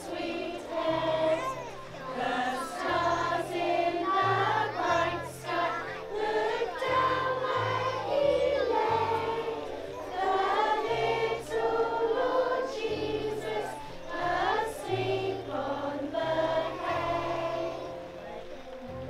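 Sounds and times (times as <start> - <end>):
women and children singing: 0.0 - 18.4.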